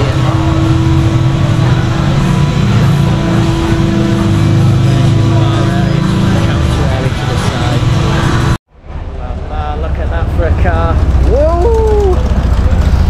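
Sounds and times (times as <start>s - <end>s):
street traffic engines rumbling: 0.0s - 13.0s.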